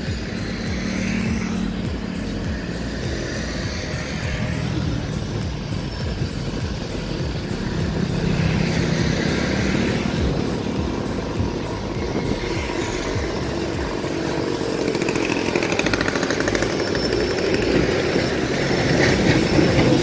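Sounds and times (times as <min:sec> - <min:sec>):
distant train rumble: 0:00.0 - 0:20.0
wind buffeting microphone: 0:00.0 - 0:20.0.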